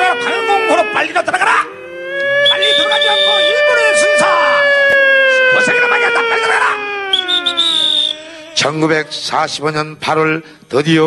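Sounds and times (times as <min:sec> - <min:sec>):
mouth whistling falling tone: 0:02.2 - 0:04.8, 0:06.8 - 0:08.7
higher whistling tone: 0:02.4 - 0:03.6, 0:07.1 - 0:08.6.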